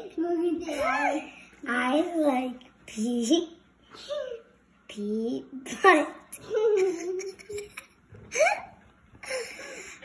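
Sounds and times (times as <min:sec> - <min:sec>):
young boy laughing: 0:06.3 - 0:10.0.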